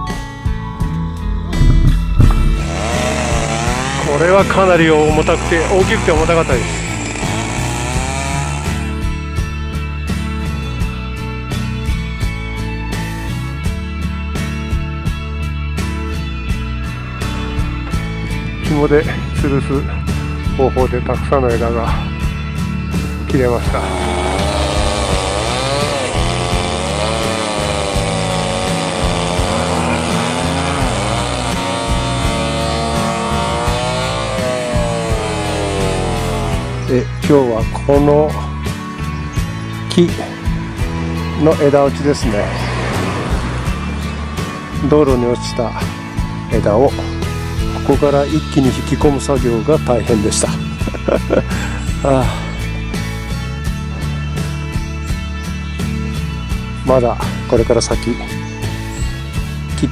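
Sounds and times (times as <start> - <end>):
background music with steady tones: 0.0 - 59.9
chainsaw running at high revs: 2.2 - 9.6, 23.4 - 37.2, 40.6 - 48.2.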